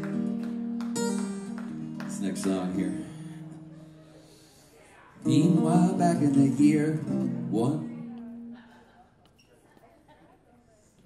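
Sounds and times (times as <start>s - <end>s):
electric guitar strumming chords: 5.2s - 8.6s.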